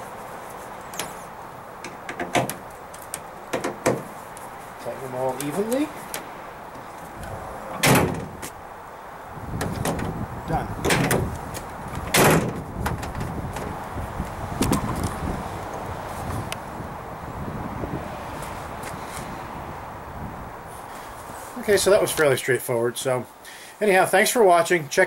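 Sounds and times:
latch and handling noises: 0.8s - 4.5s, 5.3s - 8.6s, 9.6s - 10.2s, 10.8s - 13.8s
tailgate banging shut: 1.8s - 4.2s, 7.6s - 8.6s, 9.5s - 13.8s.

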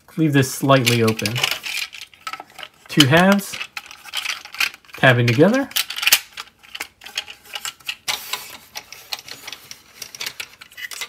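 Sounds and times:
plastic toy parts clicking and scraping: 0.7s - 11.0s.

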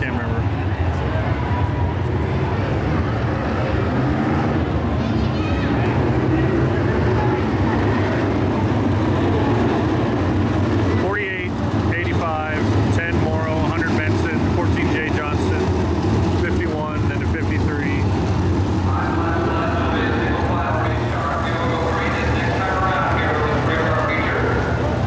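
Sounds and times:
cars passing by: 0.0s - 25.0s
race car engines droning: 0.0s - 25.0s.

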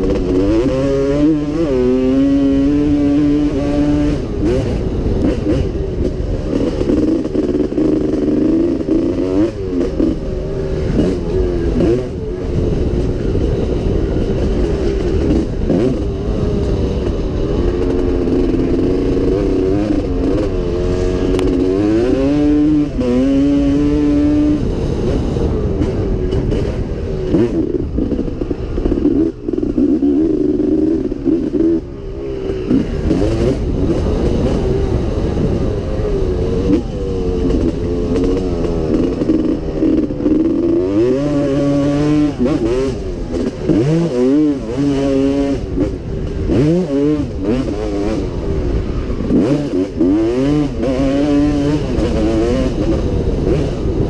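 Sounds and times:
two-stroke motocross engine revving: 0.0s - 54.0s.

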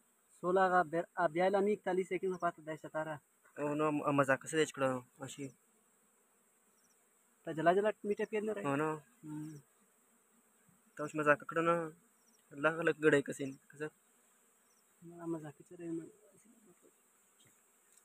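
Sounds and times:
high-pitched insect hum: 0.0s - 18.0s
man speaking: 15.1s - 16.8s.

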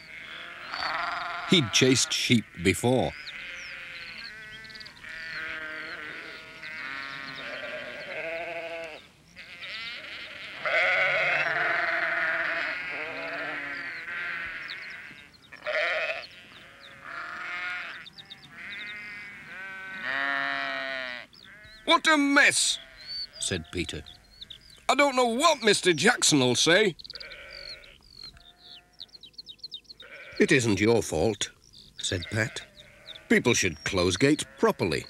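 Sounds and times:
sheep bleating: 0.0s - 24.2s, 27.1s - 29.1s, 30.0s - 30.6s, 32.0s - 35.0s.

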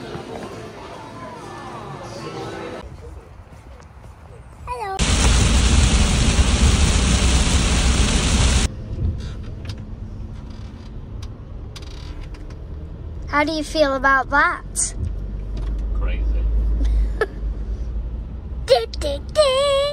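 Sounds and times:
van road and engine rumble: 4.8s - 19.9s
loud rushing roar: 5.0s - 8.7s.

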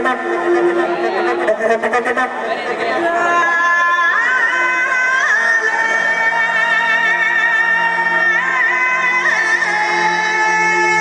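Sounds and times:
voices chattering: 0.0s - 10.1s.

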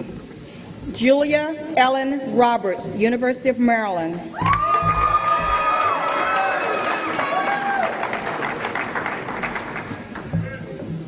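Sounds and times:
audience applauding: 4.4s - 10.4s.

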